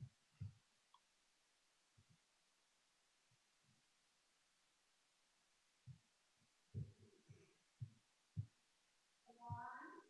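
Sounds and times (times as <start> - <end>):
faint low thumps: 6.7 - 8.6, 9.3 - 10.0.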